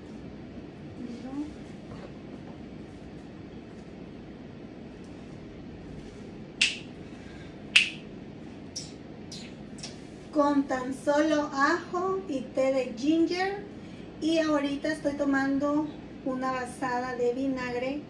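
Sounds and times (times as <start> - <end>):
low room hum: 0.0 - 18.0
finger snaps: 6.6 - 6.9, 7.7 - 8.0, 8.7 - 10.0.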